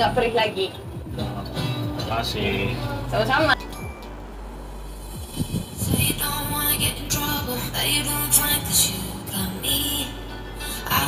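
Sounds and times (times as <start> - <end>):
background music: 0.0 - 11.0
low rumble and hiss: 0.0 - 11.0
falling low whooshes: 4.2 - 7.2.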